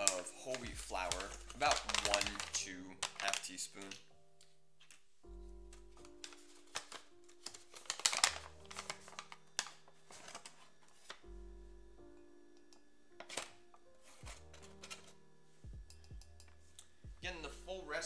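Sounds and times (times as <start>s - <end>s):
paper bag crinkling: 0.0s - 4.1s, 5.9s - 11.3s, 13.2s - 15.2s
background music with low notes: 0.0s - 18.0s.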